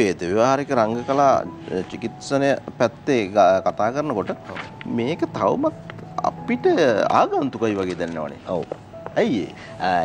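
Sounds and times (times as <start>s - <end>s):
background music: 0.0s - 10.0s
man talking: 0.0s - 10.0s.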